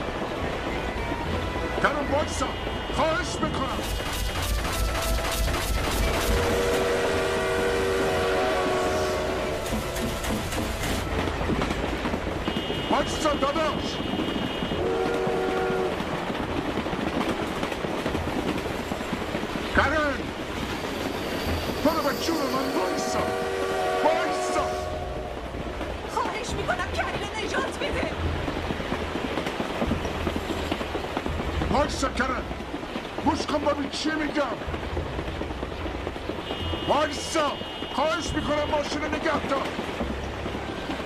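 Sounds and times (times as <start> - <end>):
train wheels rumbling and clattering: 0.0 - 41.0
multi-tone train horn blasts: 1.2 - 16.3, 21.2 - 25.7, 36.3 - 39.2.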